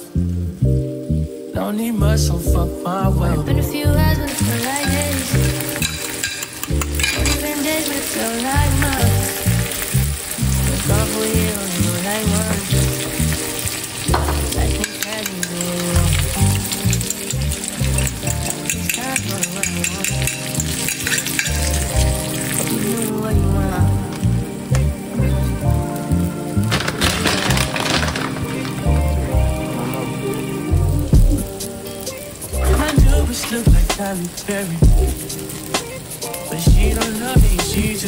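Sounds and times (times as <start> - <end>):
egg sizzling in frying pan: 4.3 - 38.0
background music with bass beat: 23.2 - 38.0.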